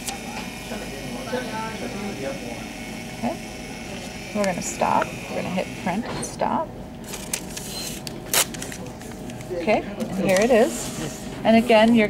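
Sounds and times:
paper tearing snap: 8.0 - 8.8.

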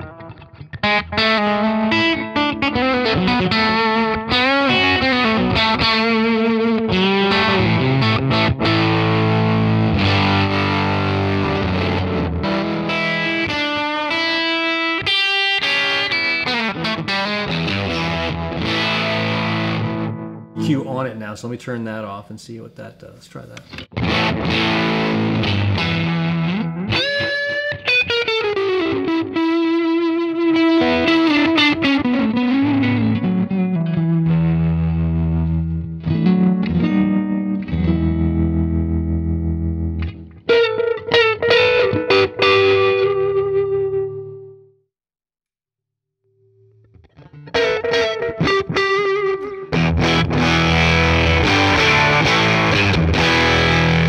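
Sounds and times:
overdriven electric guitar: 0.0 - 20.9, 23.6 - 44.8, 46.4 - 54.0.

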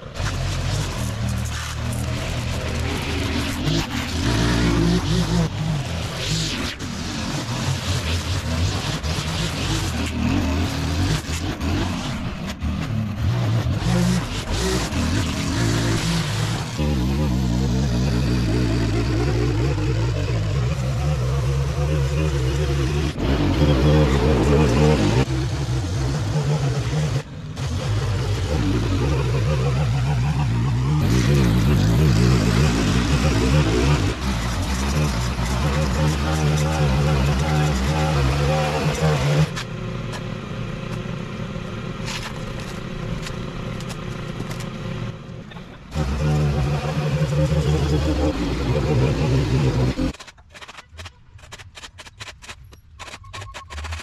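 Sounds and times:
string trimmer cutting grass: 0.0 - 41.1, 41.8 - 45.1, 45.9 - 52.6.

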